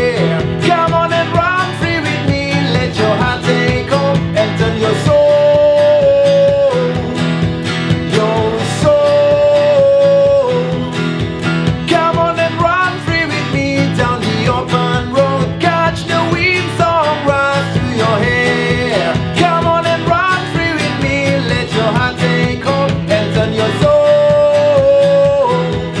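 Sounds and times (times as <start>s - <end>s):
acoustic guitar strumming: 0.0s - 26.0s
man singing: 0.0s - 26.0s.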